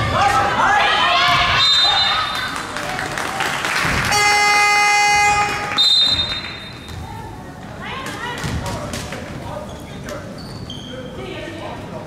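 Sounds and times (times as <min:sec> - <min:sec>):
referee's whistle blast: 0:01.5 - 0:02.2, 0:04.1 - 0:06.7
buzzer horn tone: 0:04.0 - 0:06.4.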